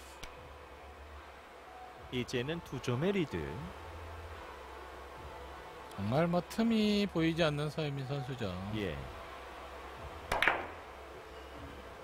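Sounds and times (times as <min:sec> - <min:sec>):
billiard balls clicking: 0:10.3 - 0:10.8
cue striking billiard ball: 0:10.3 - 0:10.8.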